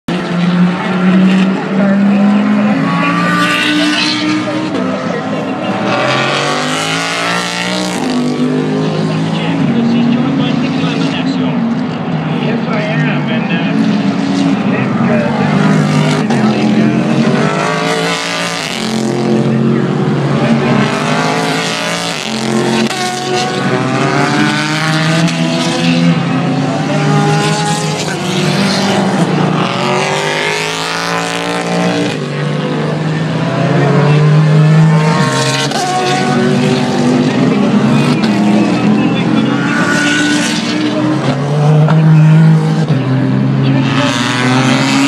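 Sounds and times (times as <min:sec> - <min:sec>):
race car engines passing: 0:00.1 - 0:45.0.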